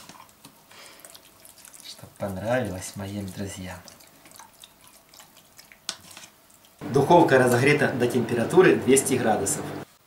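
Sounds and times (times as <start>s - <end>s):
wet squishes of hands rubbing: 0.0s - 6.8s.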